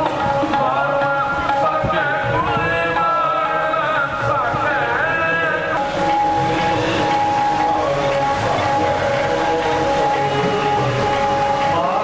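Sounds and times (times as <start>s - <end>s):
harmonium sustained chords: 0.0s - 12.0s.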